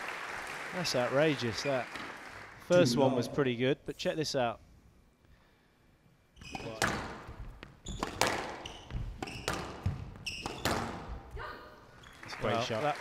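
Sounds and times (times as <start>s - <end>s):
ball hitting court walls: 6.5s - 11.2s
racket striking squash ball: 6.6s - 11.2s.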